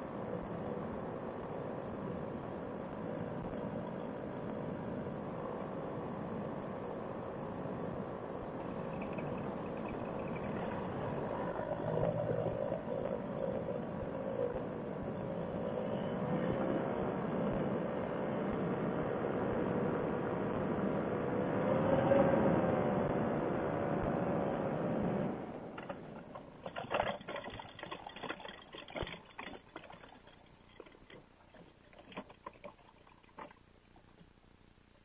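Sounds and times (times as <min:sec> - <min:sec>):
wind: 0:00.0 - 0:35.0
wheels rolling on grass: 0:08.5 - 0:21.1, 0:22.4 - 0:34.4
paramotor engine running: 0:08.6 - 0:31.0
wing rustling and clicks: 0:25.7 - 0:34.3.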